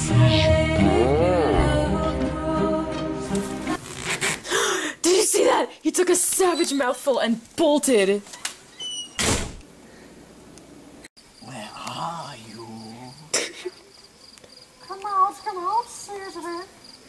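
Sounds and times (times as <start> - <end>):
sharp thump: 9.2 - 9.6
crickets trilling: 11.2 - 17.0.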